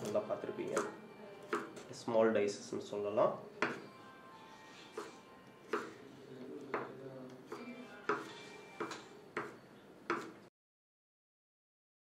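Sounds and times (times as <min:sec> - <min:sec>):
knife chopping on wooden board: 0:01.5 - 0:01.8, 0:04.9 - 0:06.0, 0:06.7 - 0:10.4.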